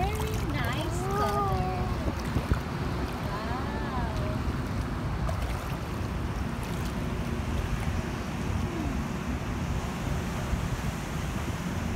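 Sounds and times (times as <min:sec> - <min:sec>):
sea waves washing: 0:00.0 - 0:11.9
wind on microphone: 0:00.0 - 0:11.9.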